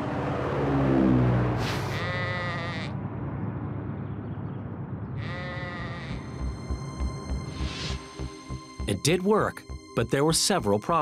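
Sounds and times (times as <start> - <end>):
sheep bleating: 1.9 - 3.0, 5.2 - 6.3
low rumble: 2.9 - 5.3.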